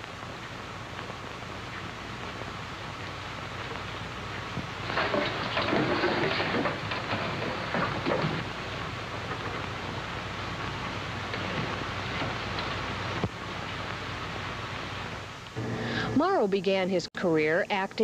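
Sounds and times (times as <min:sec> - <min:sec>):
film soundtrack rushing noise: 0:00.0 - 0:16.2.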